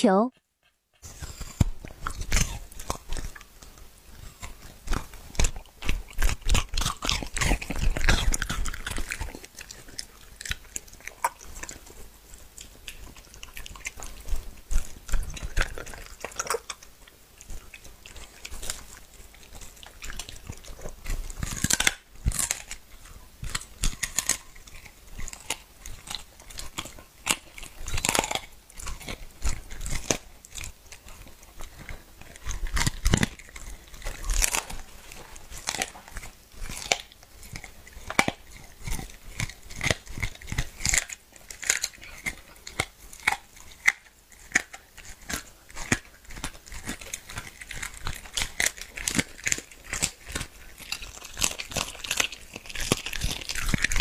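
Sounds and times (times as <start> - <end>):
dog chewing raw meat: 0.6 - 54.0.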